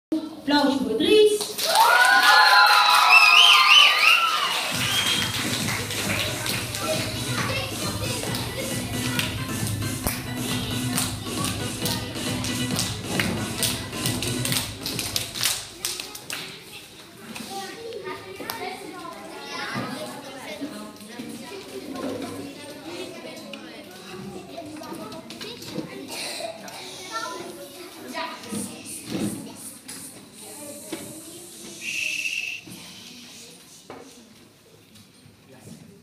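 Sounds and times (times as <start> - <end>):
children chattering: 3.2 - 35.2.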